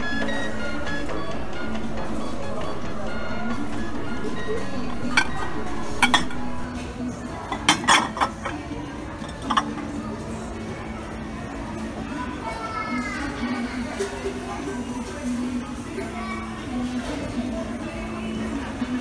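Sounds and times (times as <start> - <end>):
background music: 0.0 - 8.5
murmuring voices: 0.0 - 19.0
glass dishes clinking: 5.0 - 6.6, 7.5 - 8.6, 9.2 - 9.8.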